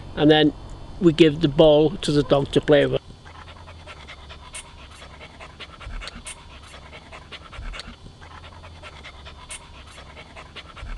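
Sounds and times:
low steady rumble: 0:00.0 - 0:10.9
dog panting: 0:03.2 - 0:10.9.

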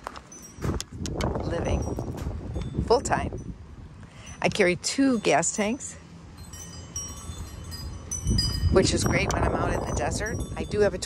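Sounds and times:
wind rumble on microphone: 0:00.0 - 0:05.7, 0:06.4 - 0:11.0
high clear chime tones: 0:04.2 - 0:11.0.

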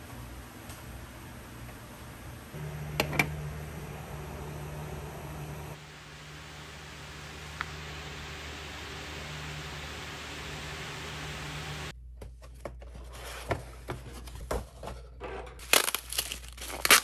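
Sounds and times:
low hum: 0:02.5 - 0:11.9
steady hiss: 0:02.6 - 0:11.9.

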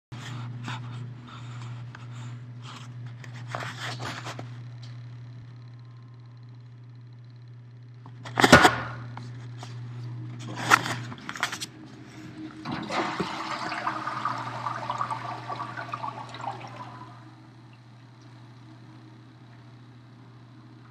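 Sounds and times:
steady low hum: 0:00.1 - 0:20.9
toilet flush mechanism clunk: 0:12.6 - 0:17.2
water rushing into toilet bowl: 0:12.6 - 0:17.2.

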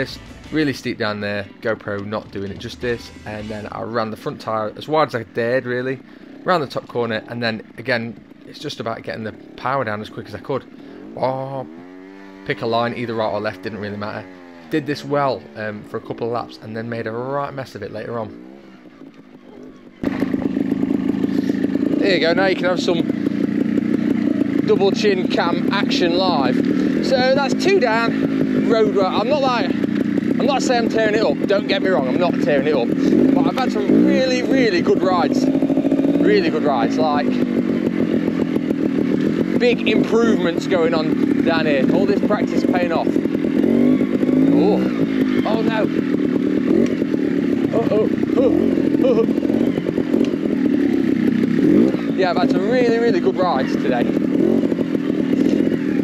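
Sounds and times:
motorcycle engine idling: 0:00.0 - 0:56.0
person exclaiming: 0:47.7 - 0:49.4.

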